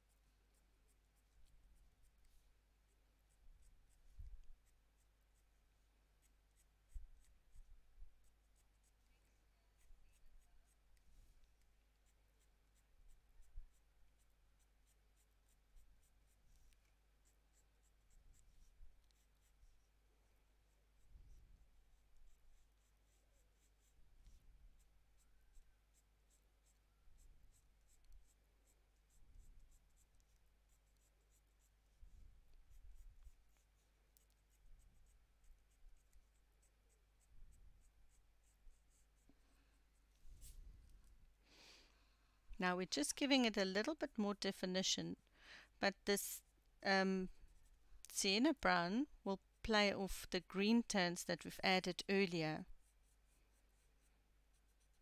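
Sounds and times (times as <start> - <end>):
pencil scratching on paper: 0.0 - 40.6, 47.4 - 48.7, 49.5 - 55.0.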